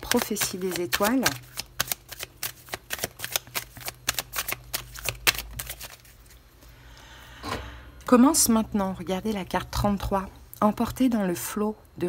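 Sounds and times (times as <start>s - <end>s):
cards being shuffled: 0.0s - 6.4s.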